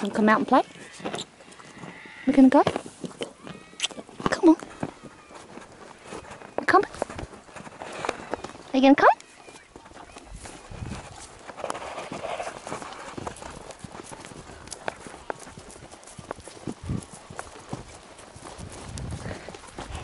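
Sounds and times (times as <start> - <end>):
horse hooves on grass: 0.0 - 20.0.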